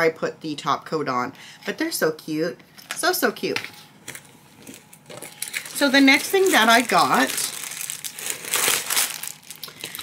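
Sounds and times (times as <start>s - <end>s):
plastic packaging crinkling: 4.1s - 10.0s.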